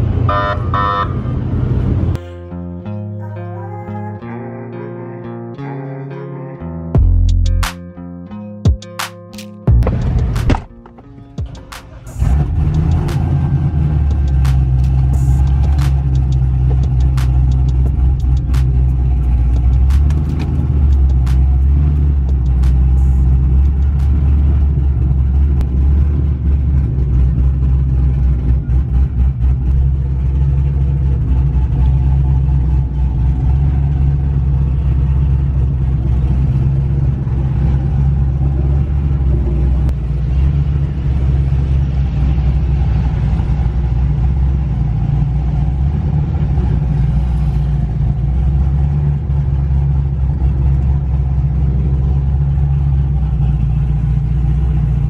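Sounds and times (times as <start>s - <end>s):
car engine droning: 0.0s - 4.2s, 9.7s - 55.0s.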